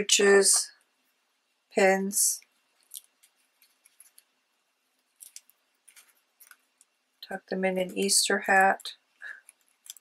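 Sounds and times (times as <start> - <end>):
faint paper scratching and rustling: 2.4 - 10.0.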